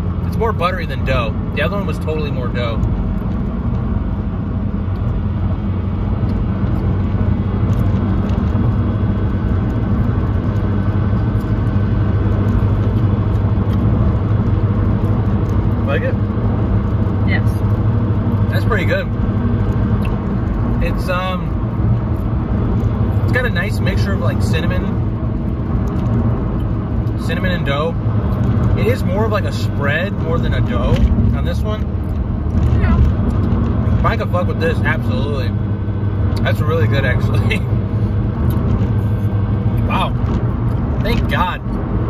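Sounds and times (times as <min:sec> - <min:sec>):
car cabin drone: 0:00.0 - 0:42.0.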